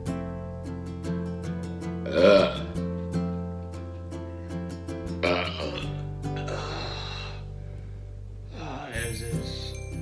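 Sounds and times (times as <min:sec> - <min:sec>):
strummed acoustic guitar music: 0:00.0 - 0:06.7
person burping loudly: 0:02.0 - 0:02.8, 0:05.2 - 0:06.9.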